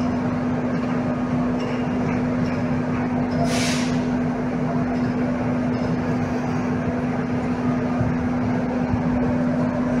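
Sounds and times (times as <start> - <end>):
constant low hum: 0.0 - 10.0
steady rushing noise: 0.0 - 10.0.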